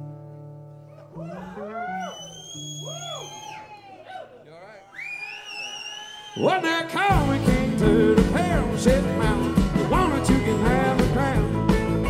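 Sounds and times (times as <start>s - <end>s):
country band playing: 6.4s - 12.0s.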